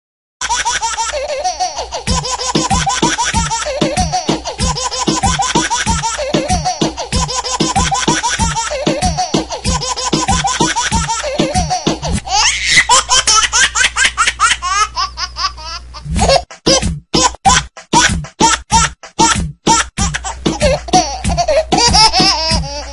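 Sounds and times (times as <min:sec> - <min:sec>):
baby laughing: 0:00.4 - 0:22.9.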